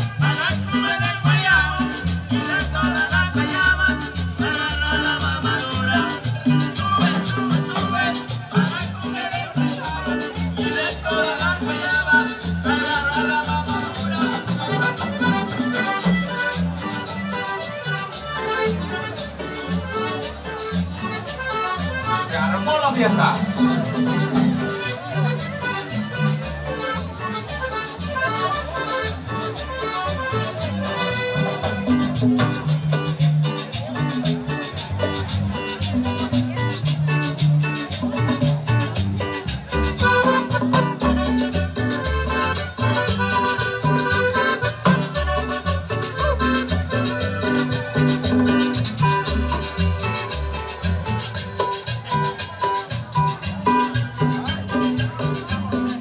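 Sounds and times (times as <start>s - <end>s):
string band playing dance music: 0.0s - 56.0s.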